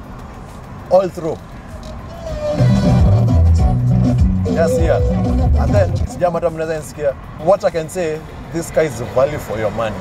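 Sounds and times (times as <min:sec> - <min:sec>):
loud car stereo music: 0:00.1 - 0:07.2.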